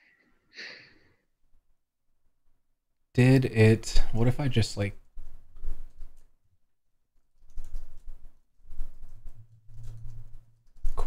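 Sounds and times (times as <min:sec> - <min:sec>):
keyboard typing: 0:05.0 - 0:06.4, 0:07.3 - 0:11.0.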